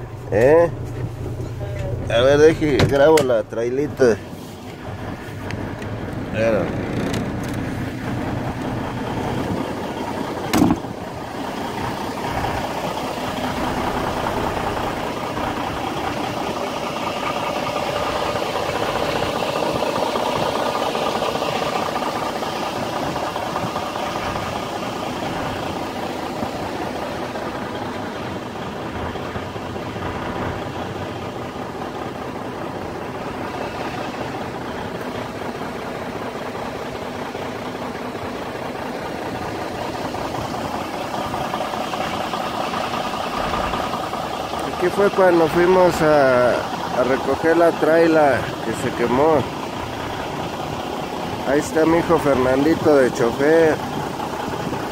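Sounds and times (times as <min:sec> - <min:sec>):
diesel truck engine idling: 0:00.0 - 0:54.9.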